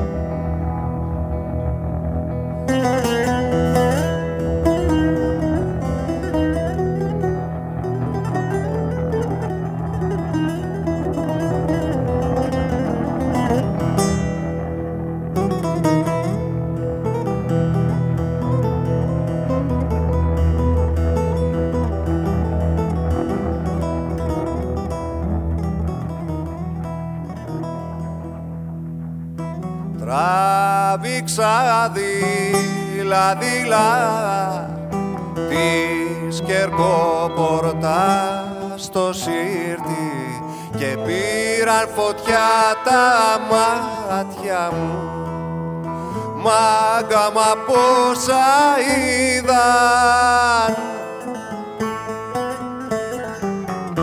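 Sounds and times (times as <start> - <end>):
low bass line: 0.0 - 42.0
plucked string instruments: 0.0 - 54.0
person singing: 29.8 - 54.0.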